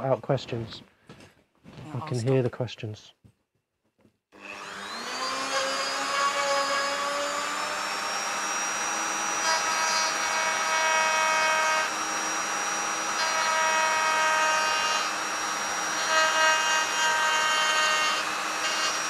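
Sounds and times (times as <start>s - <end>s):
rotary tool high whine: 4.4s - 19.0s.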